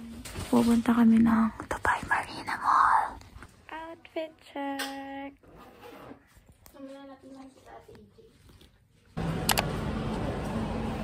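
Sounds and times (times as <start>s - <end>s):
woman whispering: 1.2s - 3.4s.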